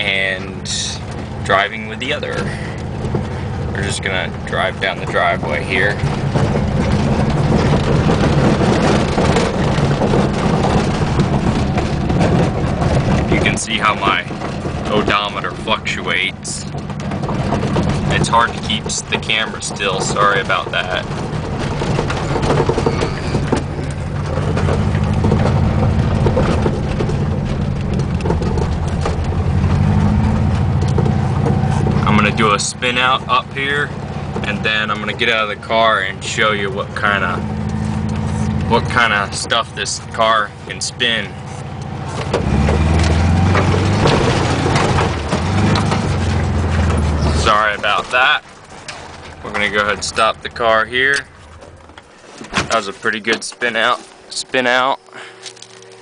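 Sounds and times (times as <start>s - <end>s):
car engine running: 0.0s - 56.0s
rattles and clicks in car: 0.0s - 56.0s
tyres scrabbling on dirt: 0.0s - 56.0s.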